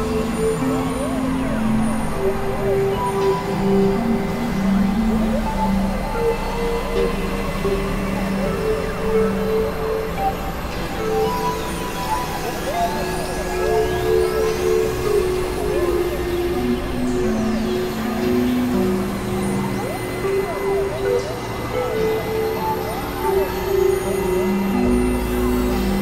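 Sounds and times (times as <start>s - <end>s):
experimental electronic music: 0.0s - 26.0s.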